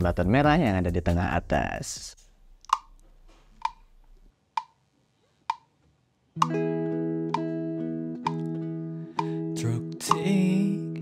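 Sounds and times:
metronome clicking: 3.6 - 3.8, 6.4 - 11.0
electric guitar chord ringing: 6.4 - 11.0.

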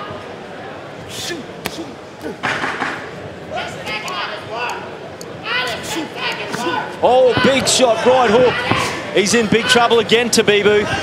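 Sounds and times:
crowd shouting: 3.5 - 10.1.

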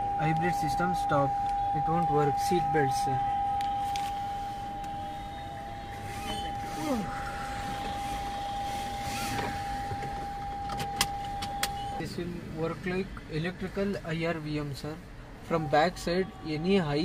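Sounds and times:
steady warning beep: 0.0 - 12.0.

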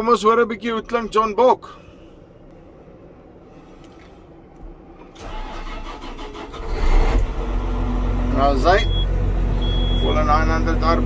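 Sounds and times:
diesel engine cranking and idling: 0.0 - 11.0.

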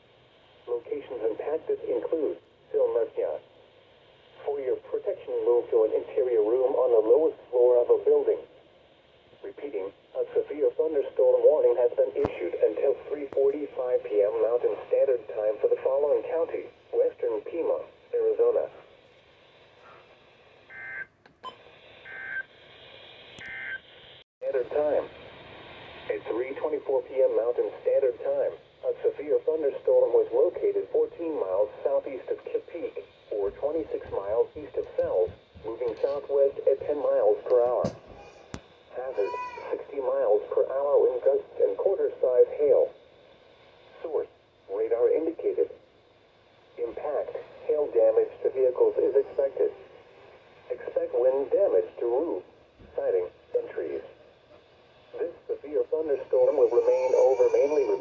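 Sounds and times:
short electronic tones: 20.7 - 22.5, 23.4 - 23.8
tinny voice on radio speaker: 26.1 - 37.9, 46.8 - 49.9, 50.7 - 54.1, 55.2 - 58.0.

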